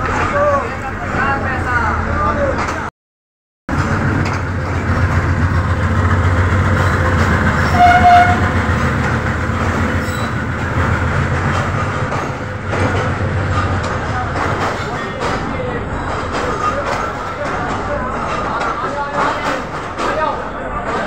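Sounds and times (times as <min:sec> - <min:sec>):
rail clatter: 0:02.4 - 0:02.9, 0:03.7 - 0:21.0
train coaches rumbling past: 0:03.7 - 0:21.0.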